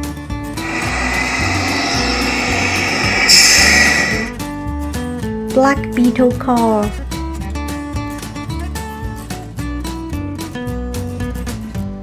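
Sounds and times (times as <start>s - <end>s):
small motor whirring: 0.6s - 4.4s.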